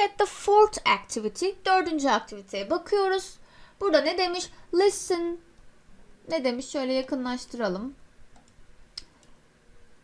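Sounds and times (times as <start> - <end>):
computer mouse click: 8.3 - 9.4.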